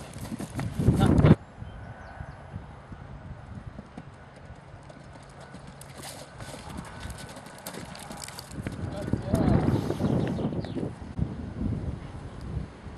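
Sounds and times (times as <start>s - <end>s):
muffled hoofbeats on turf: 0.0s - 1.2s.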